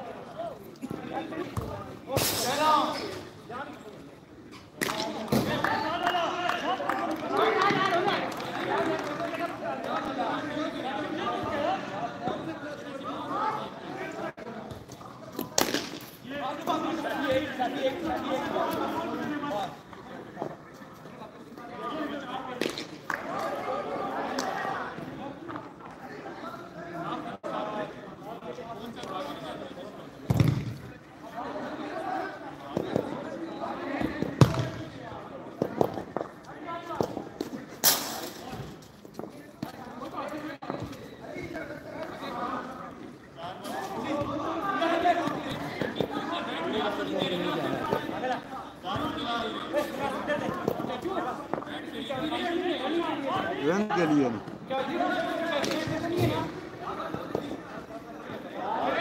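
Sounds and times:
players talking and calling: 0.0 - 59.0
players calling out: 40.7 - 59.0.

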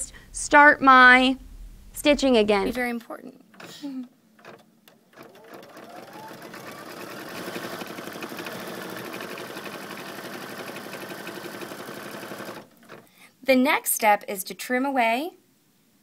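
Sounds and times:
embroidery machine stitching: 3.5 - 13.1.

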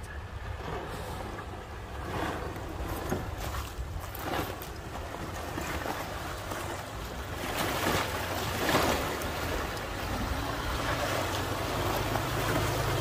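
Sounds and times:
vehicle low rumble: 0.0 - 13.0
water sloshing and splashing: 0.3 - 13.0.

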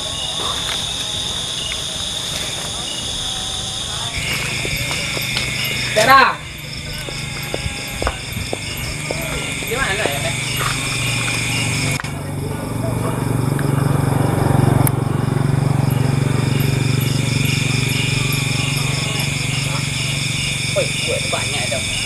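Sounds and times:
low motor hum: 0.0 - 21.2
night insects chirping: 0.0 - 22.0.

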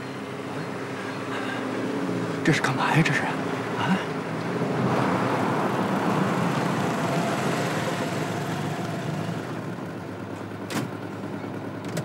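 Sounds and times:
vehicle engines running: 0.0 - 12.0.

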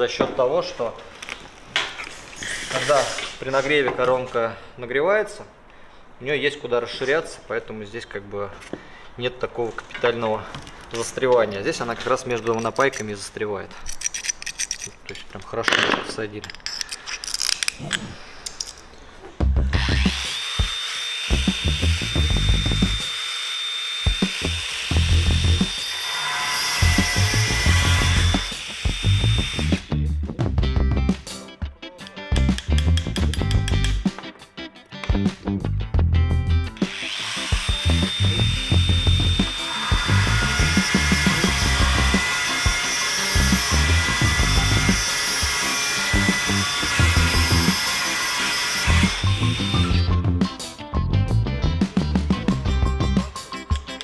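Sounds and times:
angle grinder drilling tile: 19.8 - 29.9, 36.8 - 50.1
background music with steady beat: 24.1 - 25.8, 26.8 - 48.0, 48.9 - 54.0.

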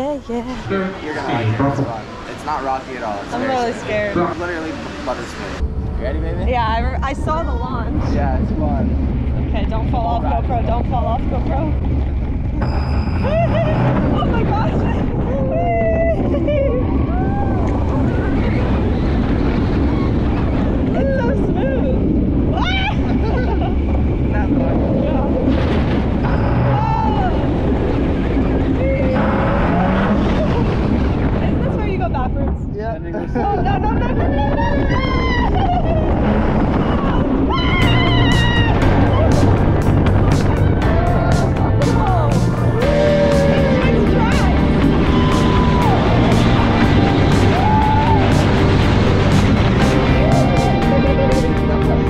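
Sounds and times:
wind rushing over microphone: 0.0 - 52.0
people laughing: 13.2 - 17.2, 20.9 - 25.5, 33.0 - 36.4, 42.8 - 52.0
riders screaming and whooping: 13.2 - 25.6, 26.2 - 31.2, 33.8 - 41.6, 42.7 - 52.0.

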